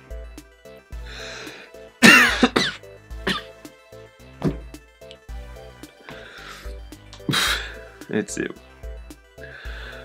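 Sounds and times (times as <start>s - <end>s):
background music with steady beat: 0.0s - 10.0s
man coughing: 2.0s - 3.6s.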